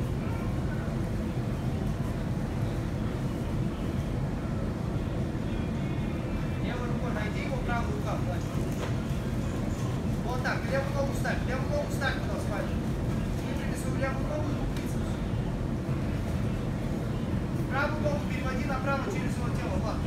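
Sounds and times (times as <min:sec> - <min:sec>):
low rumble of hall noise: 0:00.0 - 0:20.0.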